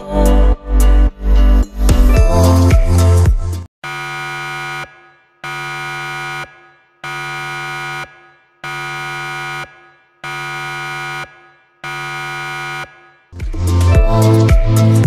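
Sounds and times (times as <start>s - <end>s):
alarm buzzer: 3.8s - 13.4s.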